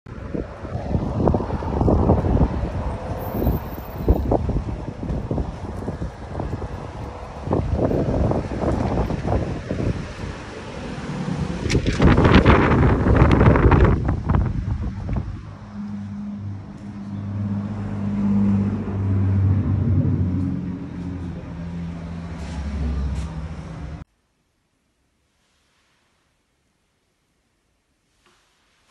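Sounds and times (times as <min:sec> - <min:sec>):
wind buffeting microphone: 0:00.1 - 0:21.6
road traffic passing: 0:00.1 - 0:24.1.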